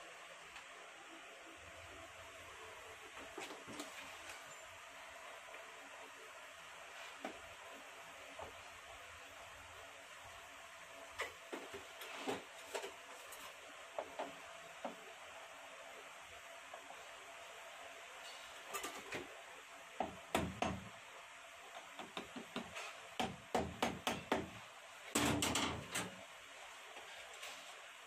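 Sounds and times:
faint steady hiss: 0.0s - 28.0s.

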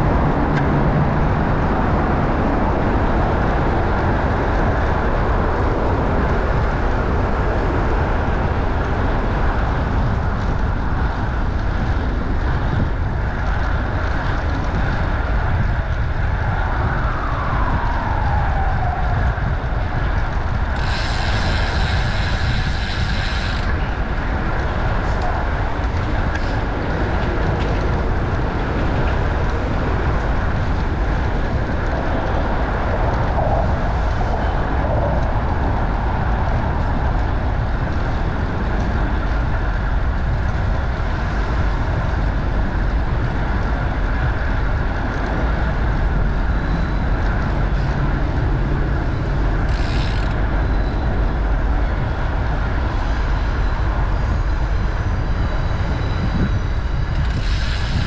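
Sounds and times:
city traffic and road noise: 0.0s - 58.0s
wind rumble on microphone: 0.0s - 58.0s.

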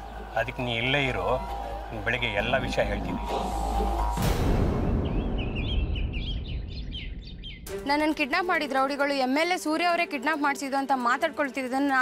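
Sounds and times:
small birds chirping: 4.8s - 7.8s.

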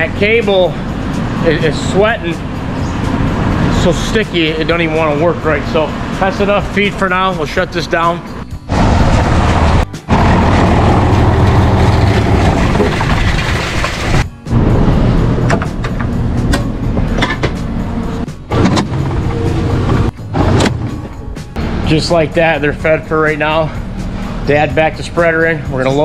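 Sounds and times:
feed machinery humming: 8.7s - 22.7s.

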